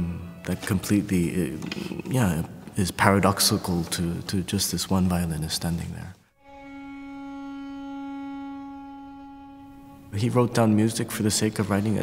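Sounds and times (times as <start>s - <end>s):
violin bowed note: 0.0s - 1.8s, 6.4s - 12.0s.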